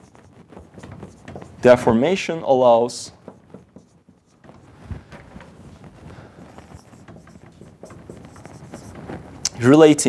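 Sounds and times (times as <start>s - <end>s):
marker writing on whiteboard: 0.0s - 10.0s.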